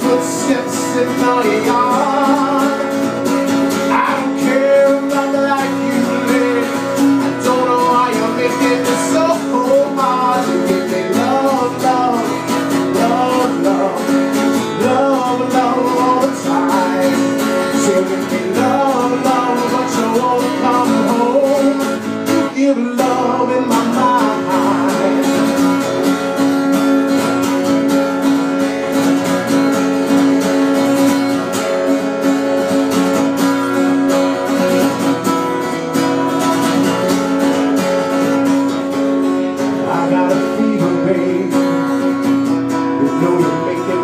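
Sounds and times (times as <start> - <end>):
man singing: 0.0 - 26.2, 35.9 - 44.0
acoustic guitar strumming: 0.0 - 44.0.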